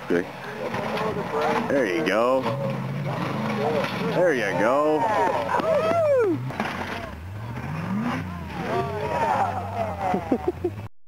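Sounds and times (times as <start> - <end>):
buggy engine revving under load: 0.3 - 10.9.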